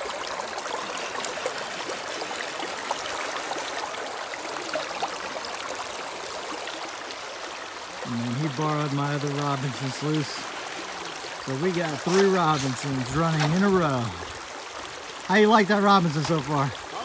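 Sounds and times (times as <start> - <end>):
water rushing through sluice box: 0.0 - 17.0.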